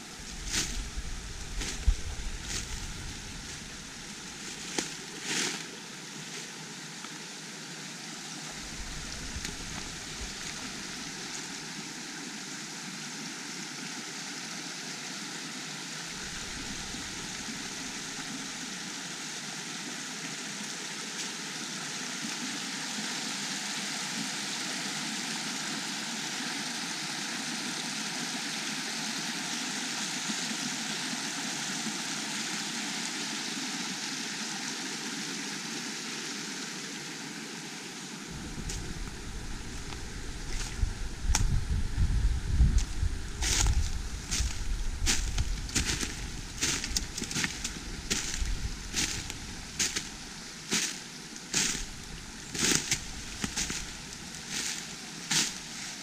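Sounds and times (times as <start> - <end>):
stream rushing over rocks: 0.0 - 56.0
wind rumble on microphone: 0.1 - 4.1, 8.6 - 11.1, 38.3 - 50.4.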